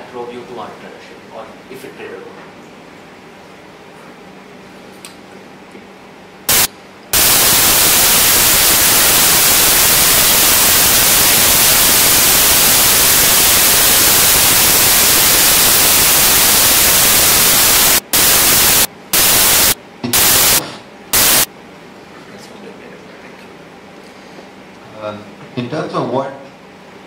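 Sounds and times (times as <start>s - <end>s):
loud static hiss: 6.4s - 21.5s.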